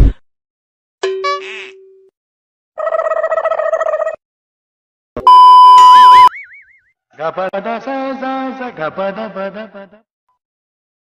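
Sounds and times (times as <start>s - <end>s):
high test-tone beep: 5.2s - 6.4s.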